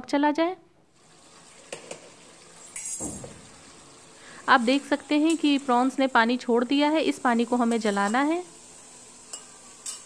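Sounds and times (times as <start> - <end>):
prawns sizzling in oil: 0.9 - 10.0.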